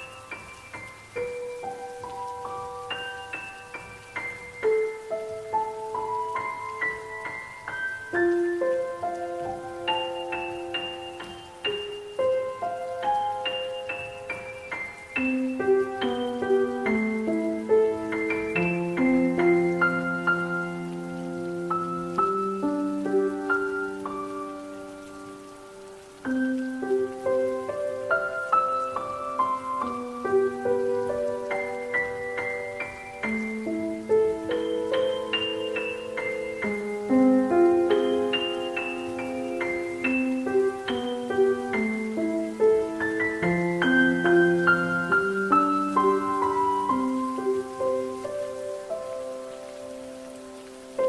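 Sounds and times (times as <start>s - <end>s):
calm solo piano: 0.0s - 51.0s
faint steady hiss: 0.0s - 51.0s.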